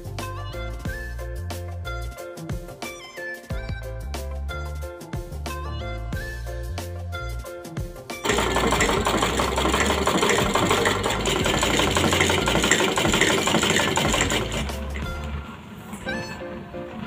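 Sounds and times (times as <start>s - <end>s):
background music: 0.0s - 17.0s
sewing machine rattling: 8.2s - 15.1s.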